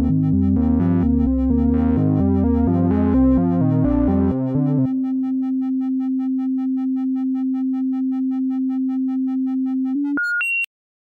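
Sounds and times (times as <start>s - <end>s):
steady low synthesizer tone: 0.0s - 10.2s
pulsing high overtones: 0.1s - 10.2s.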